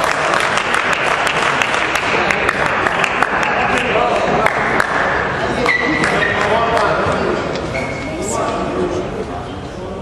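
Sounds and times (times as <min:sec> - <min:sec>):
people talking in a large hall: 0:00.0 - 0:10.0.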